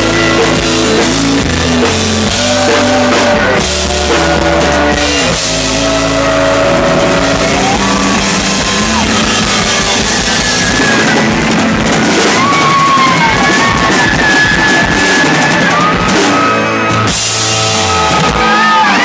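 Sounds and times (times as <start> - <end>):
loud rock band playing: 0.0 - 19.0
long notes sliding upward: 2.3 - 18.8.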